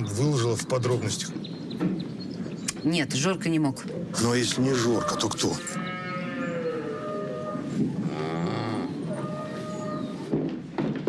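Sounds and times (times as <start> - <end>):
cow mooing: 4.6 - 10.3.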